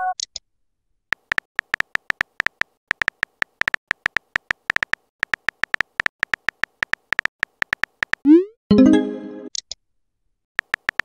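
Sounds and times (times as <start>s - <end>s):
phone keyboard key clicks: 1.1s - 8.2s, 10.6s - 11.0s.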